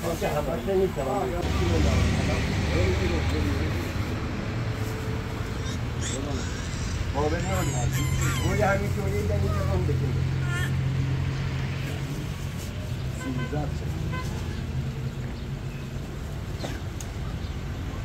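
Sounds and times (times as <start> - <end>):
people talking: 0.0 - 4.2, 6.0 - 10.7, 13.2 - 14.3
low engine hum: 1.4 - 18.0.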